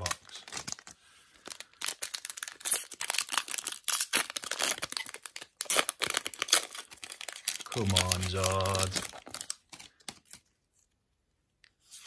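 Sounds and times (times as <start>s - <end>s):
foil wrapper tearing and crinkling: 0.0s - 10.5s.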